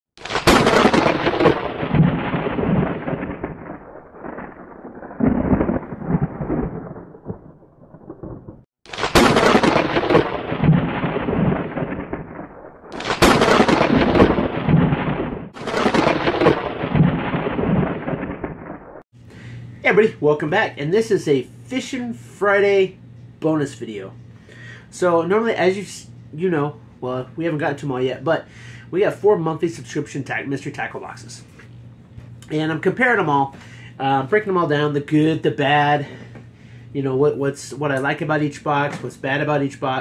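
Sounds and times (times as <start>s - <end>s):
thunder claps rolling: 0.2s - 19.0s.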